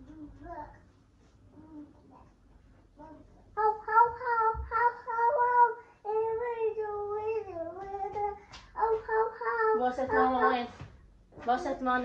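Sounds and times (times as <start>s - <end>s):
toddler singing: 3.0s - 10.7s.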